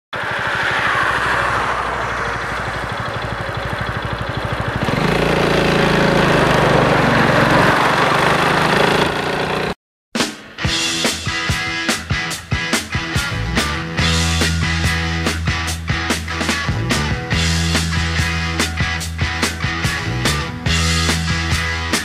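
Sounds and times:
scooter engine running: 0.2s - 9.8s.

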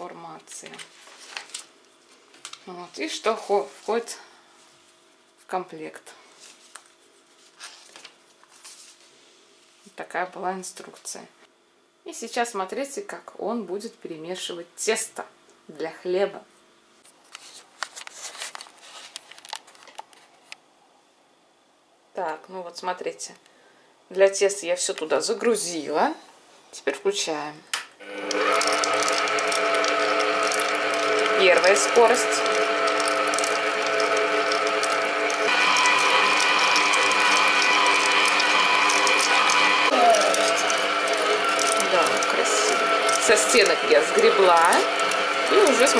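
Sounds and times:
higher mixer whine: 28.0s - 45.9s
stand mixer motor whining: 28.0s - 45.9s.

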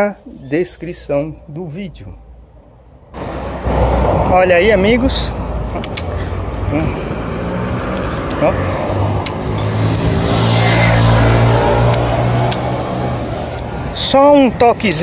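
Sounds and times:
wind: 0.0s - 15.0s
bicycle road rumble: 2.2s - 15.0s
passing vehicle engine hum: 3.2s - 14.2s.

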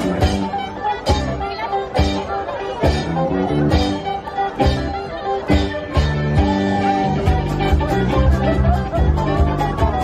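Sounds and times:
bass guitar: 0.0s - 10.0s
electric guitar: 0.0s - 10.0s.

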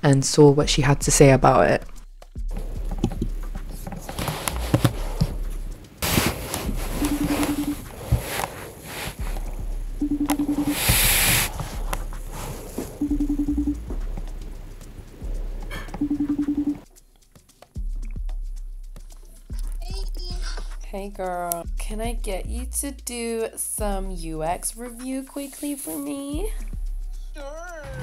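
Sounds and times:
background music: 0.6s - 28.0s
pulsing call ringing tone: 6.8s - 7.9s, 9.9s - 11.2s, 12.9s - 14.0s, 15.7s - 16.8s.

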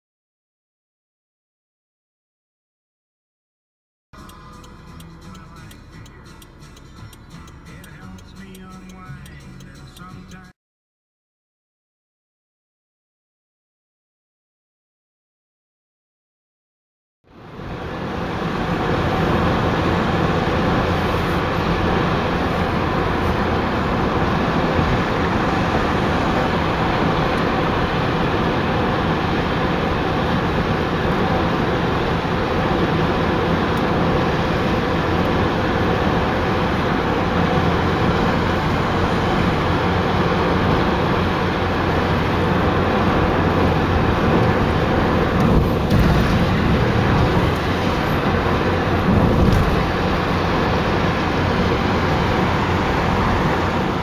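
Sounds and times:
tyre and engine drone: 4.2s - 10.5s, 17.3s - 54.0s.

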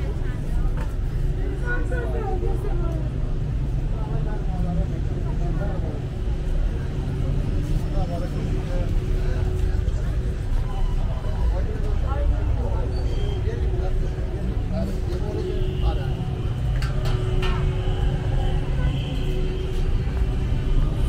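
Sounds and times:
low rumble of traffic: 0.0s - 21.0s
passersby talking: 0.0s - 21.0s.

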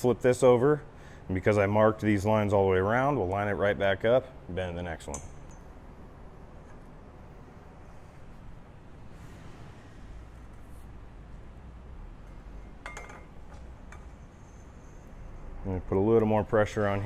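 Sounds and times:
metal tube clinking: 12.8s - 14.2s.

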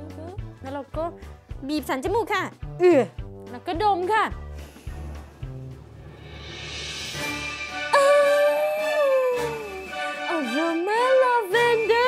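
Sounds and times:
soft background music: 0.0s - 12.0s
woman's drawn-out ooh: 7.9s - 10.1s.

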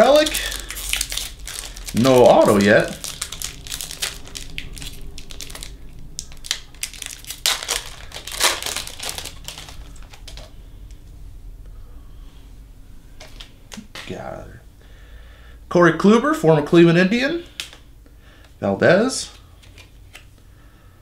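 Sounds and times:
foil wrapper tearing and crinkling: 0.0s - 10.5s.

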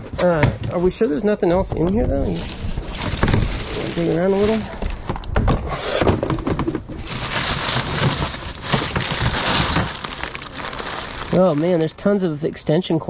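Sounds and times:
rustling of artificial garland: 2.2s - 5.1s, 7.0s - 12.1s
plastic bag crinkling: 2.3s - 5.0s, 7.0s - 12.1s.

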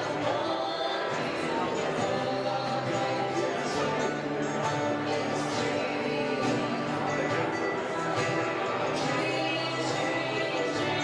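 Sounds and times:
live band with guitars: 0.0s - 11.0s.

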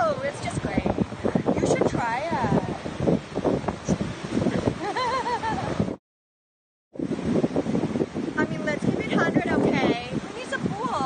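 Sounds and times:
wind buffeting microphone: 0.0s - 6.0s, 7.0s - 11.0s
surf: 7.0s - 11.0s.

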